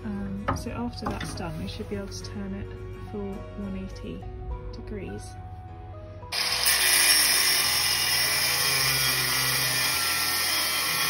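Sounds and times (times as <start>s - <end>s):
angle grinder cutting steel: 6.3s - 11.0s.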